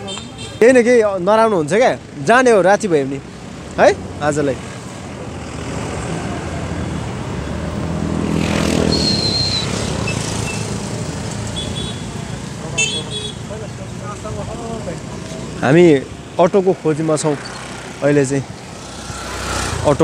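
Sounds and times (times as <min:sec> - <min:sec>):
street traffic: 0:00.0 - 0:20.0
vehicle engine passing by: 0:04.5 - 0:11.4, 0:16.9 - 0:20.0.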